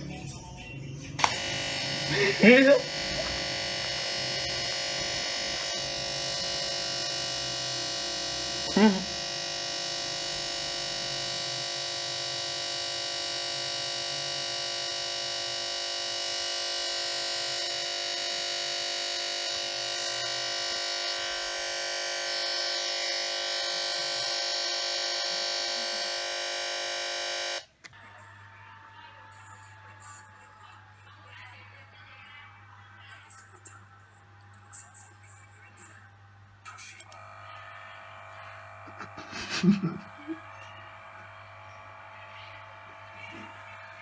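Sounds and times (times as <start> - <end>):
steady electronic buzz: 1.0 - 31.8, 37.0 - 44.0.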